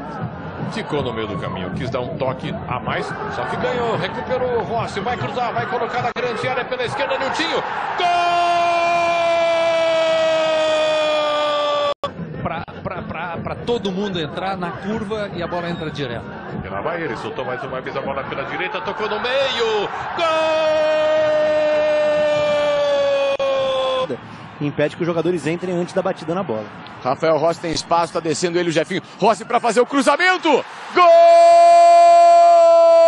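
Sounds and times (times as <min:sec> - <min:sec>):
commentator's long goal shout: 0:07.4 - 0:12.0, 0:30.0 - 0:33.0
commentator shouting: 0:29.3 - 0:33.0.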